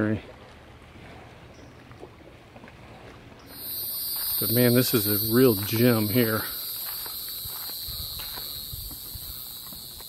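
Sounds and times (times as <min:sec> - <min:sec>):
water lapping at docks: 0:00.0 - 0:10.0
high-pitched insect chorus: 0:03.5 - 0:10.0.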